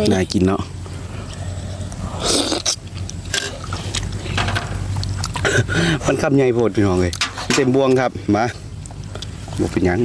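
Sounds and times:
low background hum: 0:00.0 - 0:10.0
person slurping soup: 0:02.1 - 0:02.8.

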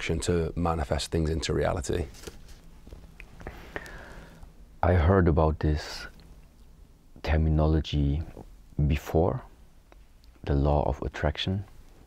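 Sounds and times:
faint breath: 0:03.4 - 0:04.5.

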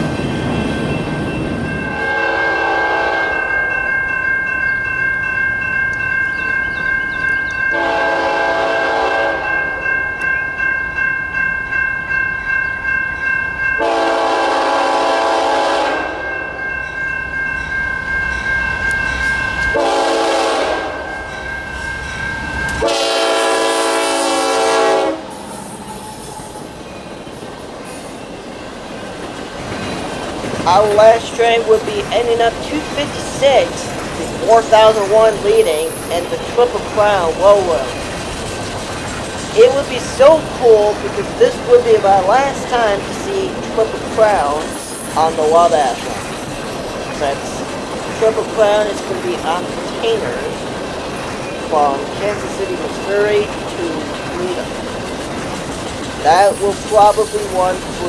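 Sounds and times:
steady high-pitched ring: 0:00.0 - 0:07.8, 0:09.4 - 0:13.8, 0:16.0 - 0:19.8, 0:21.0 - 0:23.0
rumble of rail cars: 0:00.0 - 0:58.0
locomotive air horn blasts: 0:01.9 - 0:03.5, 0:07.7 - 0:09.6, 0:13.8 - 0:16.3, 0:19.8 - 0:21.1, 0:22.8 - 0:25.4.

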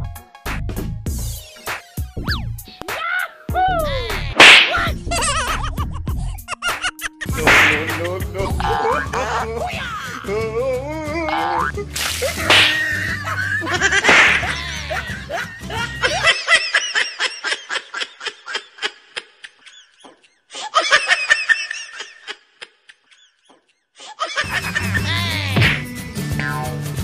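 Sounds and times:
background music with bass line: 0:00.0 - 0:02.9, 0:03.5 - 0:16.3, 0:24.6 - 0:27.0
person laughing: 0:04.0 - 0:25.6.

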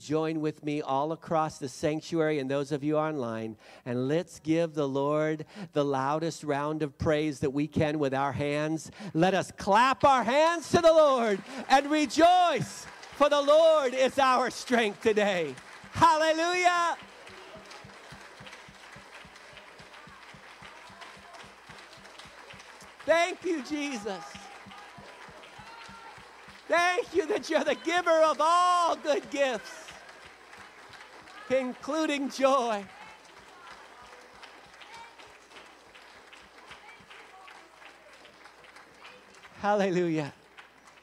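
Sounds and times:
general applause: 0:09.7 - 0:41.0
fast steady clapping beat: 0:09.8 - 0:41.0
faint voices: 0:19.3 - 0:30.4.

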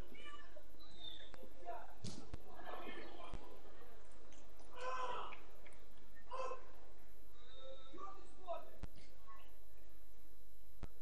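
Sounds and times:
sports hall background noise: 0:00.0 - 0:11.0.

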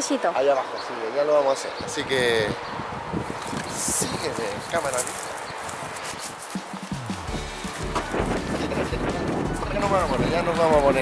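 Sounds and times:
footsteps on gravel: 0:03.3 - 0:10.2
background music: 0:06.4 - 0:11.0.

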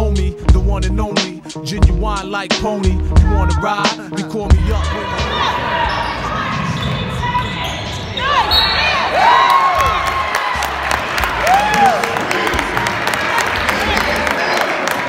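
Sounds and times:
voices in gym: 0:04.8 - 0:09.7
sneakers squeaking: 0:04.8 - 0:10.1.

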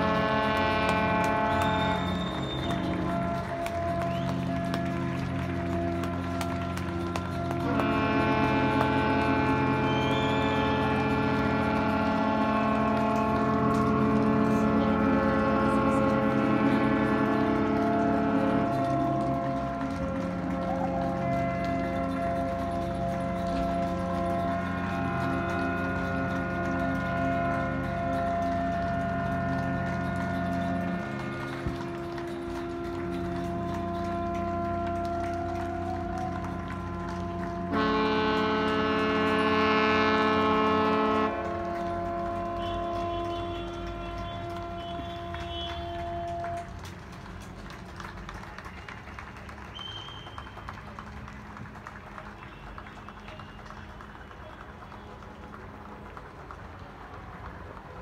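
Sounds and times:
ship horns blasting: 0:00.0 - 0:47.4.

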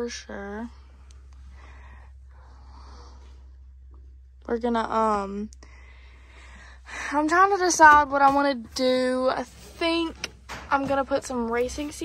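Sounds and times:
heater humming: 0:00.0 - 0:12.0
person breathing close to microphone: 0:00.9 - 0:03.6, 0:05.6 - 0:07.2.

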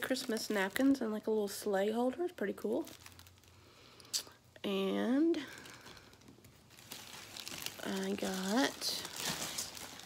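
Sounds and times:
bag crinkling: 0:00.0 - 0:01.0, 0:02.6 - 0:03.8, 0:05.3 - 0:10.0.

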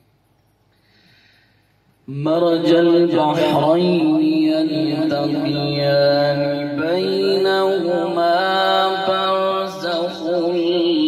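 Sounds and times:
man chanting into microphone: 0:02.1 - 0:11.0.

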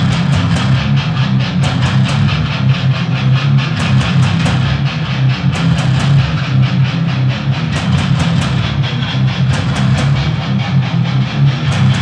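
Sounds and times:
distorted electric guitar riff: 0:00.0 - 0:12.0
drums: 0:00.0 - 0:12.0.

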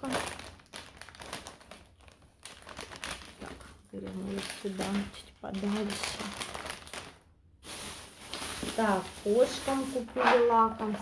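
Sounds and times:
plastic snack packet crinkling: 0:00.0 - 0:11.0.

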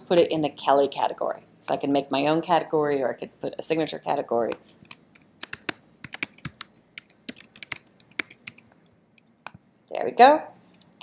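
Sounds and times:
computer keyboard typing: 0:04.6 - 0:08.7.

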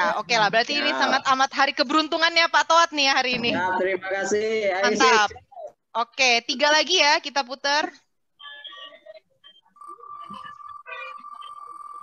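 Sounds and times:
faint electronic music: 0:08.4 - 0:12.0.

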